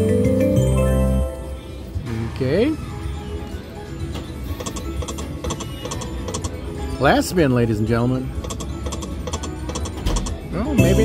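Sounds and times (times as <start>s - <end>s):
casino machine music: 0.0s - 1.9s, 3.1s - 11.0s
slot machine reels clicking: 4.2s - 6.6s, 8.4s - 10.4s.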